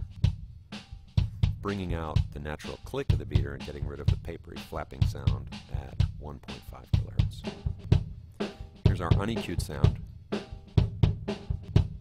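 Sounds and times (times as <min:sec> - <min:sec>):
kick drum beat: 0:00.0 - 0:12.0.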